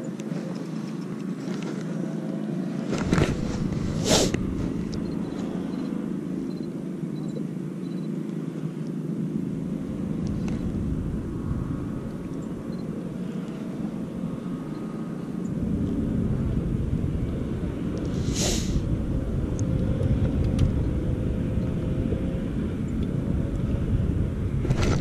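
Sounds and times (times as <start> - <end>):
low rumble of wind and water: 0.0 - 25.0.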